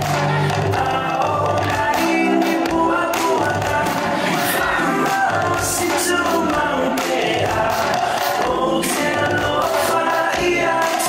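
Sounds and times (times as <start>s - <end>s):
group singing over music: 0.0s - 11.0s.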